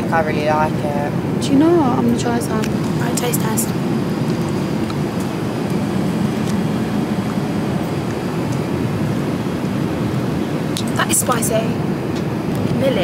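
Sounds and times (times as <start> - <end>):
jet engines and airflow rush: 0.0 - 13.0.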